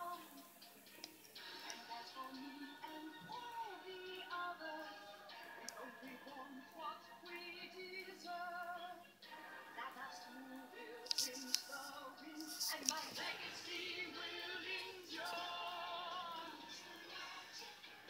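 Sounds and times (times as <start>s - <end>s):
women singing over backing music: 1.6s - 17.6s.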